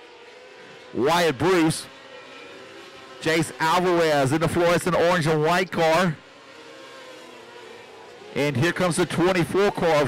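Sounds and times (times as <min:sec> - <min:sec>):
distant racecar engines drone: 0:00.0 - 0:10.0.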